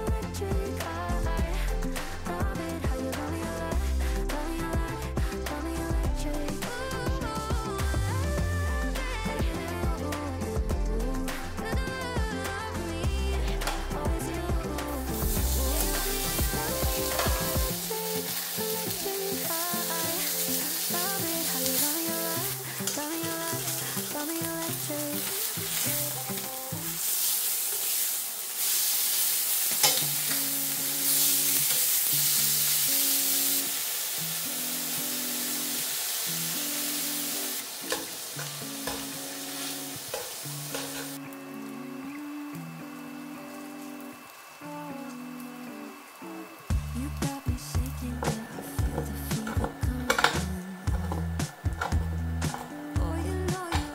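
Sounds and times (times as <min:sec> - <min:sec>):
background music: 0:00.0 - 0:53.9
meat sizzling in a frying pan: 0:14.9 - 0:52.8.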